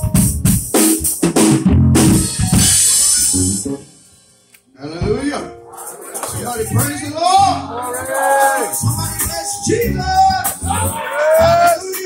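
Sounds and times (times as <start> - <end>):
drum kit snare and bass hits: 0.0 - 3.8, 8.6 - 12.0
man talking: 4.8 - 12.0.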